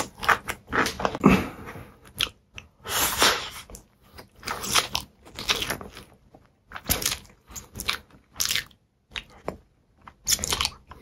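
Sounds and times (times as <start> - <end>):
chewing noodles: 2.0 - 11.0.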